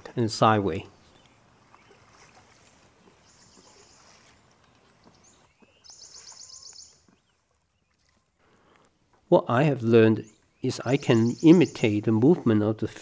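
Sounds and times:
faint outdoor ambience: 0.0s - 13.0s.

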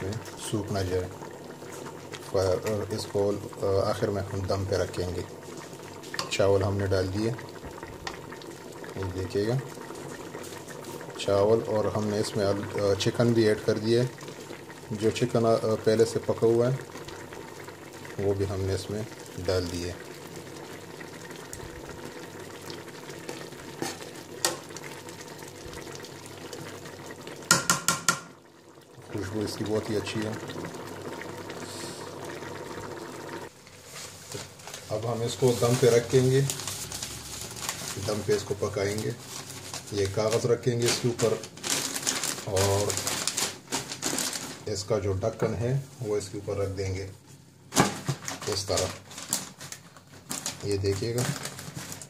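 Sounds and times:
rice and chicken bubbling in pot: 0.0s - 52.0s
person talking: 2.3s - 5.3s, 8.9s - 9.7s, 29.0s - 30.5s, 34.9s - 36.6s, 39.8s - 41.5s, 42.4s - 43.1s
spoon knocking against pot: 27.5s - 28.3s
newspaper rustling and crackling: 33.8s - 44.9s, 47.8s - 52.0s.

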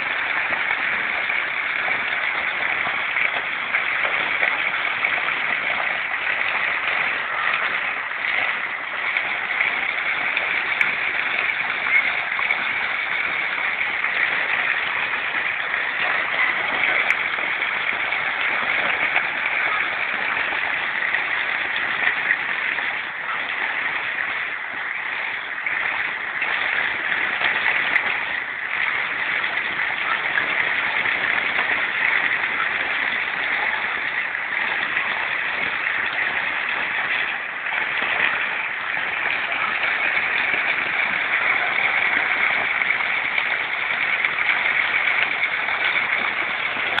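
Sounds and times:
falling rain: 0.0s - 47.0s
floodwater rushing: 0.0s - 47.0s.

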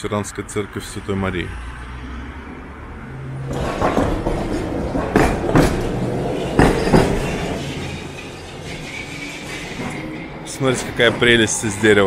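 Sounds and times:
tram rumble: 2.6s - 12.0s
tram wheels clacking on rails: 3.5s - 12.0s.

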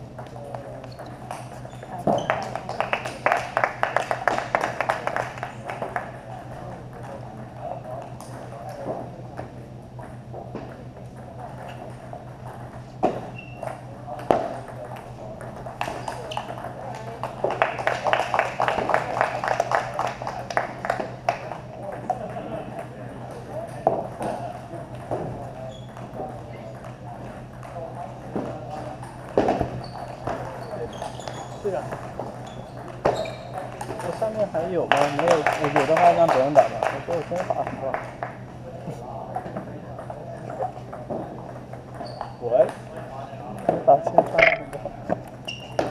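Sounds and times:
table tennis balls clicking: 43.6s - 45.3s.

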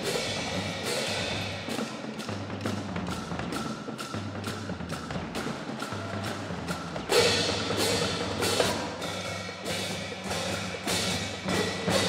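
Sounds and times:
percussion band drums and cymbals: 0.0s - 12.0s.

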